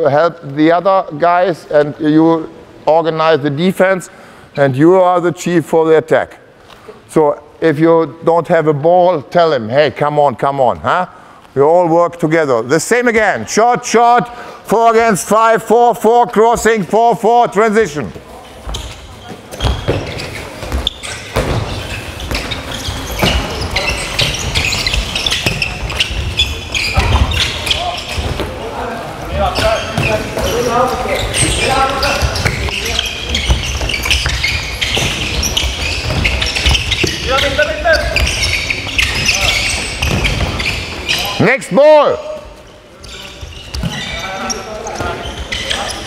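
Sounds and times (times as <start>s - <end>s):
balls bouncing on wooden court: 17.8s - 41.5s, 42.2s - 46.0s
players calling out: 18.7s - 46.0s.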